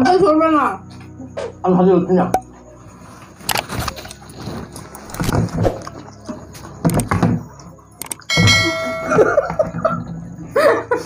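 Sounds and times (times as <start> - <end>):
animation clicks: 8.0 - 8.3
ringing bell chime: 8.3 - 9.8.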